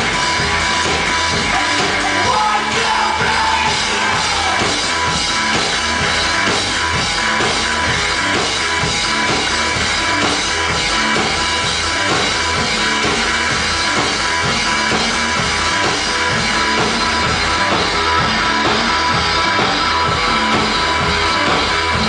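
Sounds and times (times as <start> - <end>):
drums beating: 0.0 - 22.0
electric bass: 0.0 - 22.0
electric guitar: 0.0 - 22.0
live rock band playing: 0.0 - 22.0.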